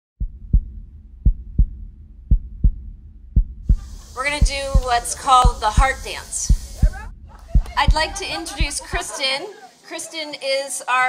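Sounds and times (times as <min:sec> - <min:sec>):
low steady rumble: 0:00.2 - 0:09.1
heartbeat thumps: 0:00.2 - 0:09.2.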